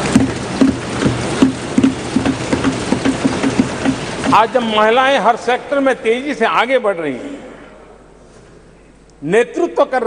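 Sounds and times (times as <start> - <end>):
rhythmic thumping on desks: 0.0 - 5.0.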